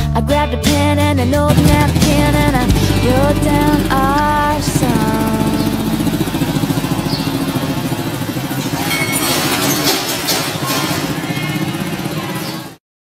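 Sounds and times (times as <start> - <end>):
country-pop song: 0.0 - 6.9
small motorcycle engine idling: 1.5 - 12.8.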